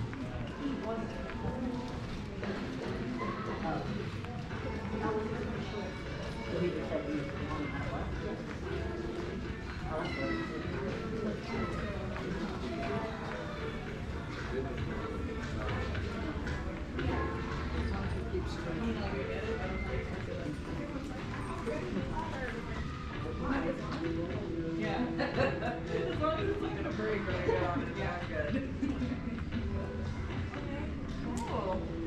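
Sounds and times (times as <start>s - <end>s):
low indistinct conversation: 0.0s - 32.0s
murmur of mall background noise: 0.0s - 32.0s.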